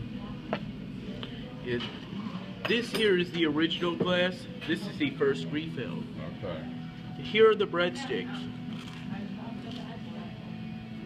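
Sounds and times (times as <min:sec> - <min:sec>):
low restaurant hum: 0:00.0 - 0:11.0.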